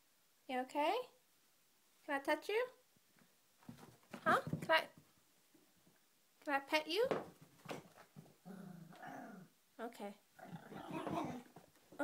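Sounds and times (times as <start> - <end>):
dog growling: 8.4 - 9.5, 10.4 - 11.6.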